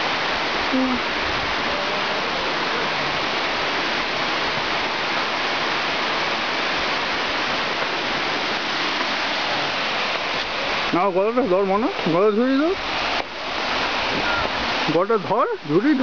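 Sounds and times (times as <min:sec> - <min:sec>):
water rushing: 0:00.0 - 0:16.0.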